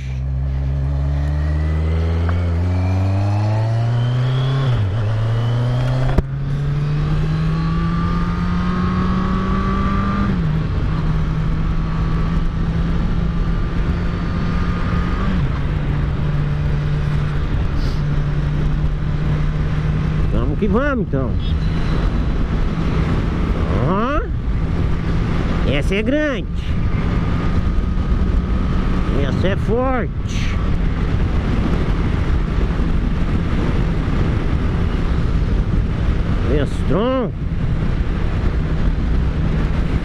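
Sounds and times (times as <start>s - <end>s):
motorcycle engine accelerating: 0.0s - 40.0s
road noise: 0.0s - 40.0s
wind noise: 0.0s - 40.0s.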